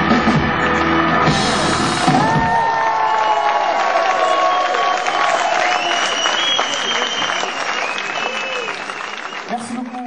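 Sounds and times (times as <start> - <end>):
audience applause: 0.6 - 10.0
high held whistle: 4.4 - 9.5.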